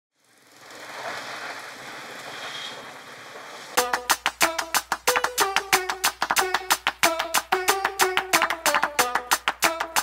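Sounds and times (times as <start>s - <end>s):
plucked percussive music notes: 3.8s - 10.0s.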